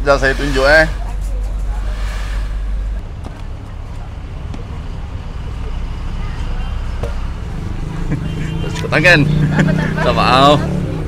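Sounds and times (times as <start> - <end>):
indistinct background voices: 0.0 - 7.8
traffic rumble: 0.0 - 11.0.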